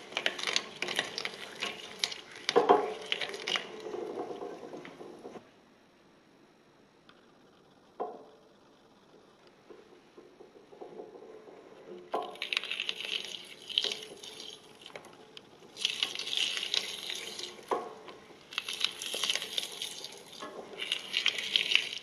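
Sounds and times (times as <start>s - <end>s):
tap water splashing in a sink: 0.0s - 5.3s, 12.1s - 22.0s.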